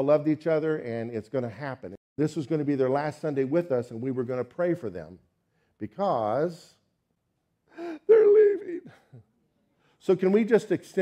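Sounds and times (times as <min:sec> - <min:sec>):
man's sharp intake of breath: 0:07.7 - 0:08.1.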